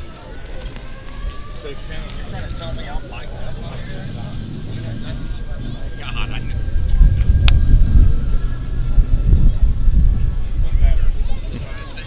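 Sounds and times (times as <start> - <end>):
faint crowd voices: 0.0 - 12.0
wind buffeting microphone: 0.0 - 12.0.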